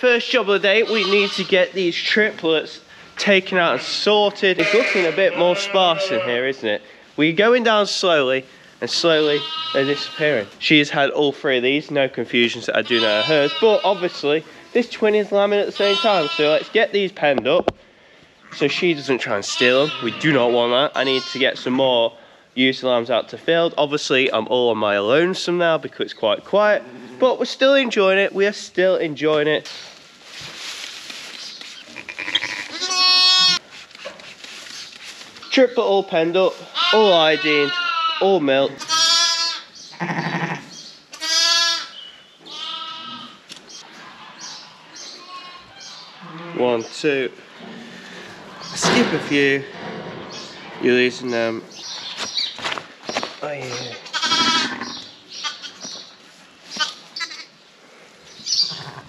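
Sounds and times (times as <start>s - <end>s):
sheep bleating: 0.6s - 1.7s, 3.5s - 6.5s, 9.0s - 10.6s, 12.8s - 14.3s, 15.6s - 16.8s, 18.4s - 21.7s, 31.9s - 33.6s, 36.7s - 46.6s, 54.0s - 55.8s, 56.8s - 57.5s
straw rustling: 27.7s - 38.4s.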